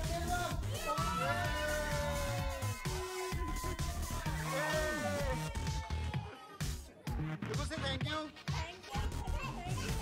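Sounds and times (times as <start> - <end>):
children shouting excitedly: 0.0 - 6.9, 8.9 - 10.0
dance music: 0.0 - 10.0.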